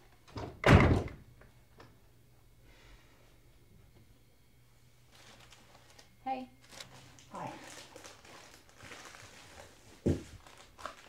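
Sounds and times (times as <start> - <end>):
door swinging shut with thud: 0.4 - 1.2.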